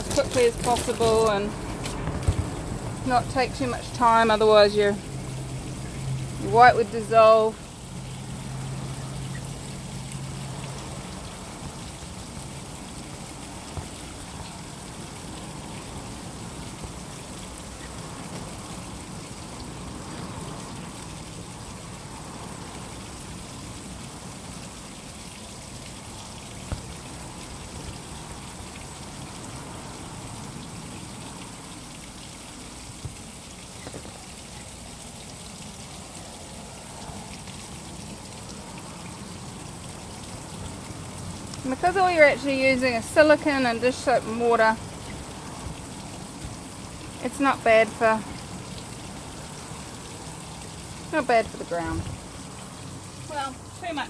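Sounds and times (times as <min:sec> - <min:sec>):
wet sponge scrubbing canvas: 0:00.0 - 0:01.6
water dripping: 0:00.0 - 0:54.0.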